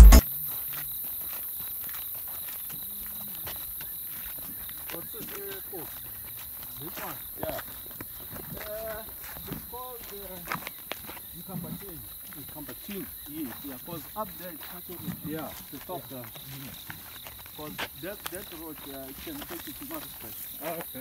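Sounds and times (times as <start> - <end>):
footsteps on dirt track: 0.0 - 21.0.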